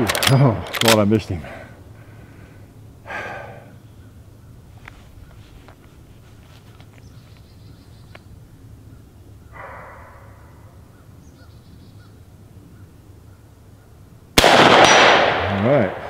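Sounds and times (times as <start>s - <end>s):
low steady rumble: 0.0s - 16.0s
breathy exhale: 1.4s - 3.8s, 9.6s - 10.7s
faint bird calls: 2.0s - 14.2s.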